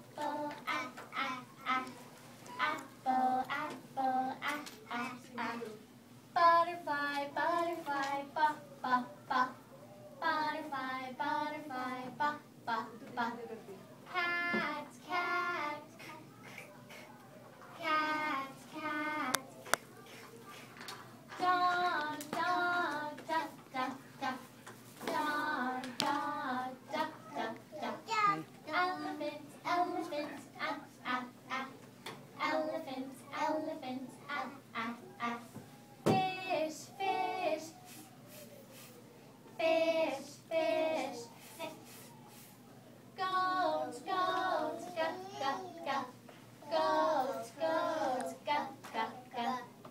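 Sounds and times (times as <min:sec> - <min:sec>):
young children singing: 0:00.0 - 0:05.8, 0:14.1 - 0:17.2, 0:17.8 - 0:31.8, 0:32.4 - 0:38.1, 0:39.5 - 0:42.1, 0:43.2 - 0:49.8.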